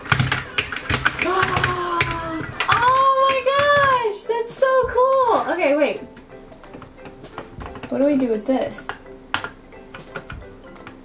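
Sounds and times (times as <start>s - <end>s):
clicks of hard plastic: 0.0s - 4.1s, 6.2s - 11.0s
soft background music: 0.0s - 11.0s.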